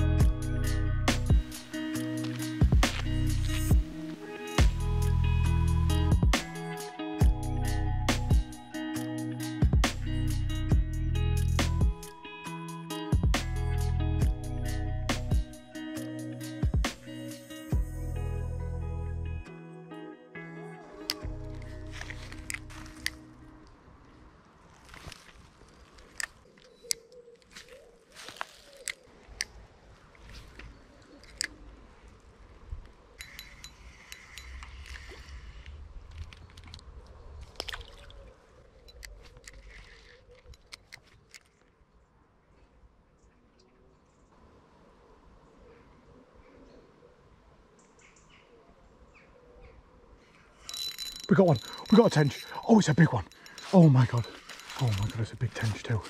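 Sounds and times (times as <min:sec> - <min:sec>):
background music: 0:00.0 - 0:23.9, 0:50.8 - 0:56.0
waterside ambience: 0:00.7 - 0:05.7, 0:20.6 - 0:56.0
small birds chirping: 0:25.7 - 0:29.6
fishing rod and reel clicks: 0:31.1 - 0:31.6, 0:33.2 - 0:36.9, 0:50.7 - 0:52.6.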